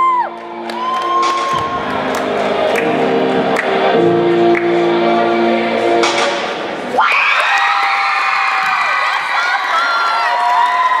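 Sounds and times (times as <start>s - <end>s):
crowd cheering and screaming: 0.0s - 2.2s, 6.9s - 11.0s
music: 0.0s - 7.0s.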